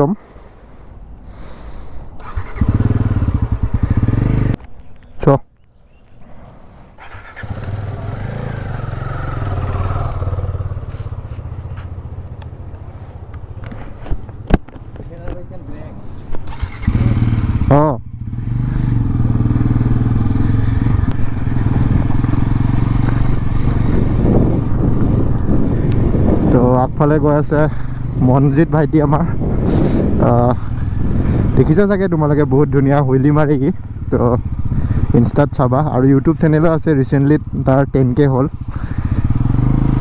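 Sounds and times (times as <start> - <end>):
motorcycle engine idling and revving: 1.4 - 5.1, 5.7 - 40.0.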